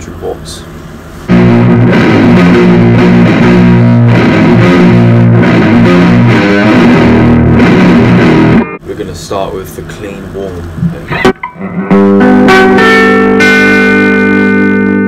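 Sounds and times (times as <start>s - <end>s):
electric guitar chords and riffs: 1.3s - 8.8s, 10.8s - 15.0s.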